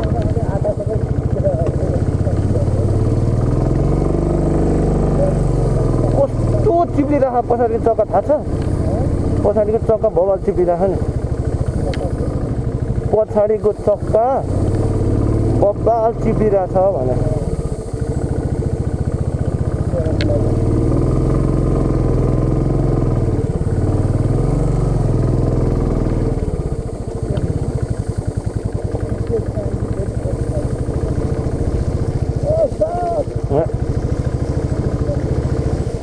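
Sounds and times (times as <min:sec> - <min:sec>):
motorcycle engine running: 0:00.0 - 0:36.0.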